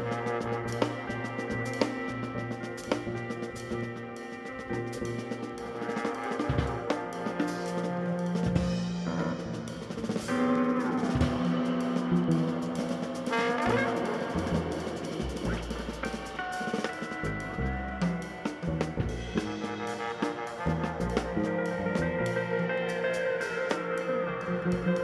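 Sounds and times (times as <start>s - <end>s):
bass: 0.0s - 25.0s
drum kit: 0.0s - 25.0s
electric guitar picking: 0.0s - 25.0s
trombone playing: 0.0s - 25.0s.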